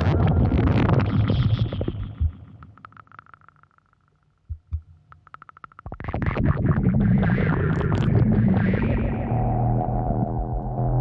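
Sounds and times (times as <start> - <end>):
low synthesizer drone: 8.0 - 11.0.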